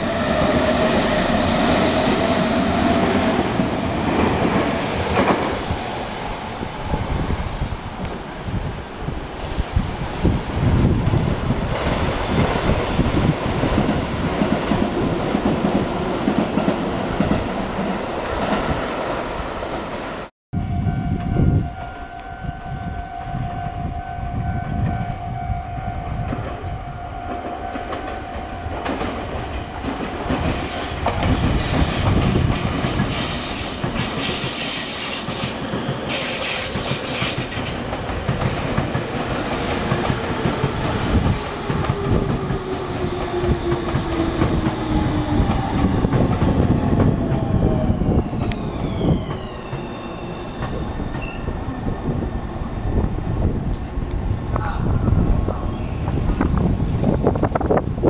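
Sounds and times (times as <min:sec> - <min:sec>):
train wheels clattering on rails: 0:04.0 - 0:05.8, 0:27.3 - 0:51.6
train motor whine: 0:39.6 - 0:52.8.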